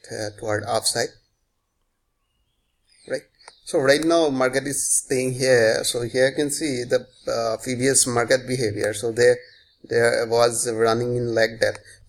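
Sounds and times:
man speaking: 0.0s - 1.2s, 3.1s - 12.0s.

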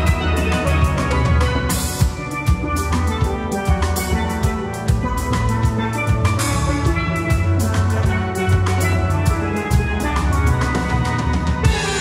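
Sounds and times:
drums: 0.0s - 12.0s
steel pans playing a tune: 0.0s - 12.0s.

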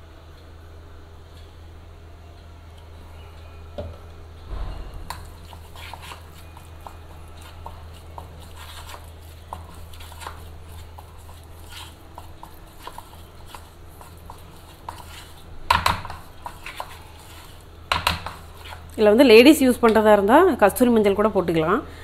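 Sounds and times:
spoon stirring wet paste: 5.1s - 19.2s.

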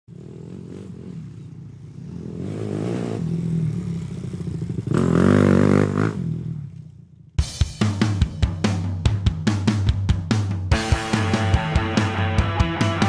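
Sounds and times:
motorcycle engine revving: 0.1s - 7.2s.

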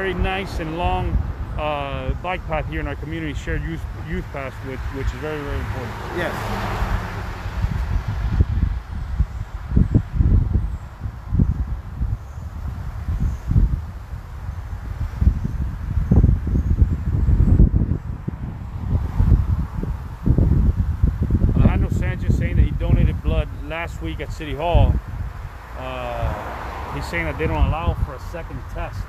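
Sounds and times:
wind buffeting microphone: 0.0s - 29.0s.

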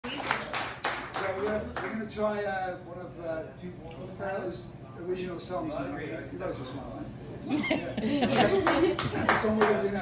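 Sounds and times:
hand claps: 0.0s - 2.0s, 8.4s - 10.0s.

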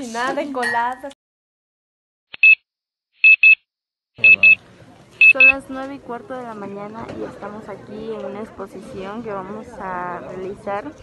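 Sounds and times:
short high electronic beeps: 2.4s - 2.6s, 3.2s - 3.6s.

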